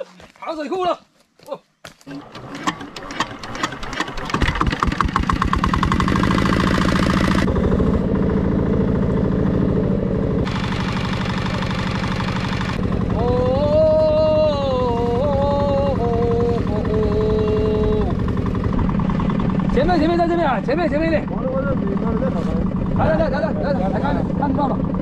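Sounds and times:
small boat engine running: 2.1s - 25.0s.

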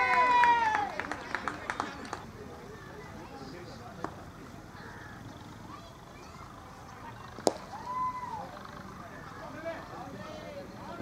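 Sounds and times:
ball hit by bat: 7.4s - 7.8s.

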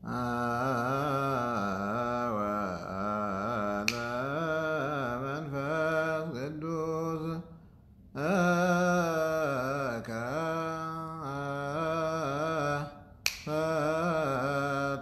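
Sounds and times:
man chanting solo: 0.0s - 7.5s, 8.2s - 15.0s
sharp click: 13.2s - 13.5s.

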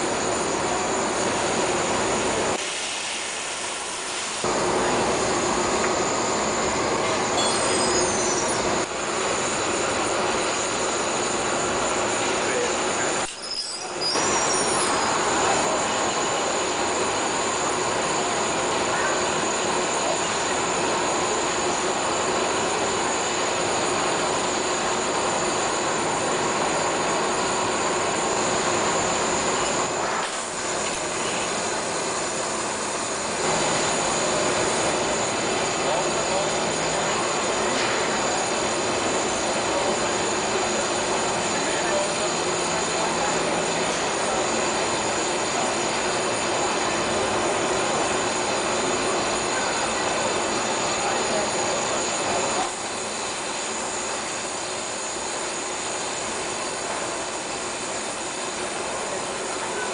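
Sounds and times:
furnace burners roaring: 0.0s - 59.9s.

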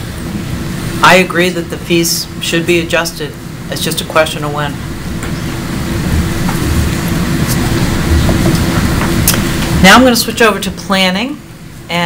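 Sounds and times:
ventilation hum: 0.0s - 12.0s
low rumble: 4.8s - 9.7s.

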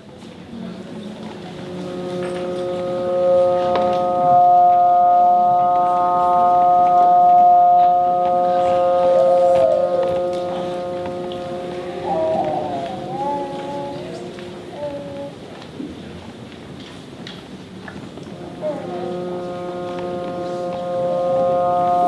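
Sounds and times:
held chord of steady pitches: 1.2s - 15.5s, 18.3s - 22.0s
trombone sustained notes: 1.3s - 15.4s, 18.4s - 22.0s.

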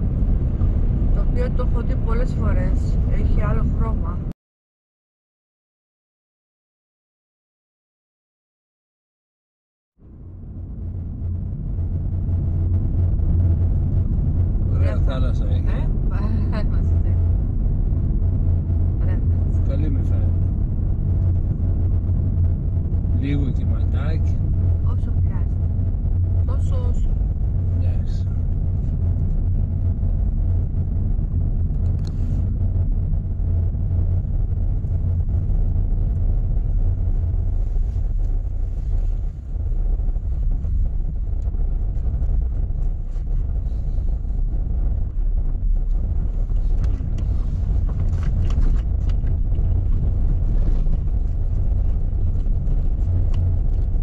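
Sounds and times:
car road and engine rumble: 0.0s - 4.4s, 10.0s - 54.0s.

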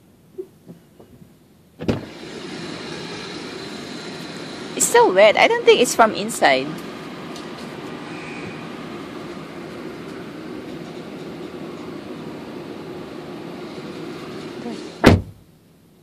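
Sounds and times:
steady low hum: 0.0s - 16.0s
car door shutting: 1.8s - 2.3s, 14.8s - 15.4s.

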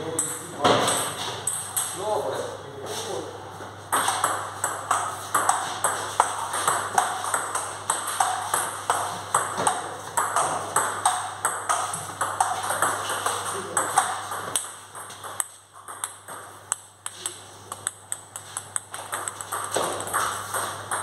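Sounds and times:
table tennis ball clicking: 3.9s - 21.0s.

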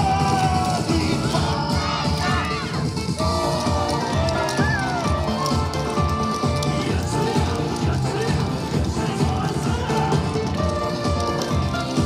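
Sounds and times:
upbeat dance music: 0.0s - 12.0s
group shouting calls: 0.1s - 7.4s.

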